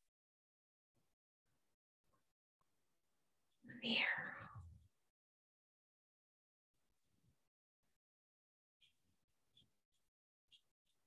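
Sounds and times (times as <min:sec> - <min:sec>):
person whispering: 0:03.7 - 0:04.7.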